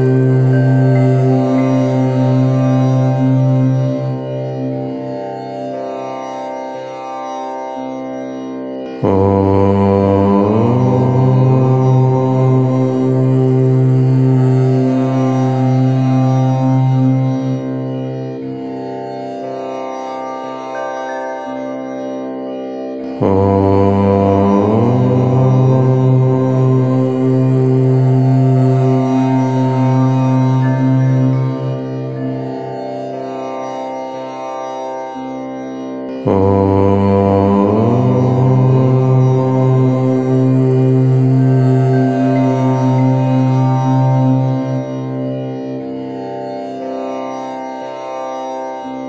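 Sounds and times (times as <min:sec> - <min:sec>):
low voice chanting: 0:00.0 - 0:04.3, 0:09.0 - 0:17.3, 0:23.2 - 0:32.2, 0:36.2 - 0:45.2.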